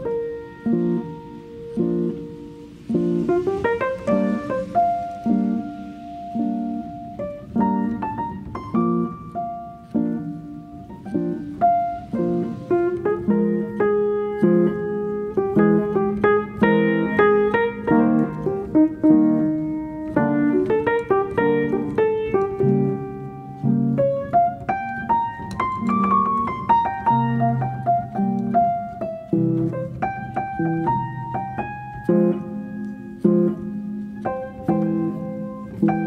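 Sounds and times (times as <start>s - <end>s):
piano music: 0.0s - 36.0s.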